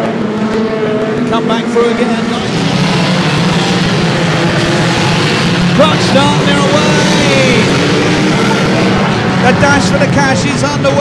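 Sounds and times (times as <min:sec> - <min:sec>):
many car engines droning: 0:00.0 - 0:11.0.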